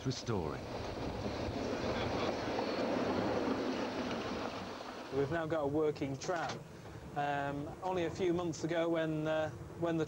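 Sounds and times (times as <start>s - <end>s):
tram wheels rushing on track: 0.3s - 5.5s.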